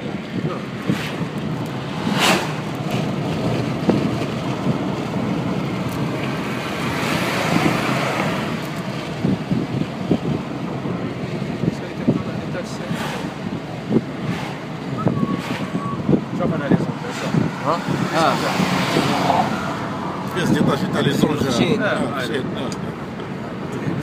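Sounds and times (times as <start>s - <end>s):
road and wind noise in car: 0.0s - 24.0s.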